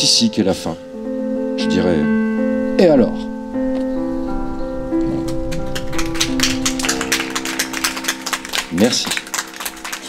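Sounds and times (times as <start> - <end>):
piano sustained chord: 0.0 - 10.0
hand claps and applause: 5.2 - 10.0.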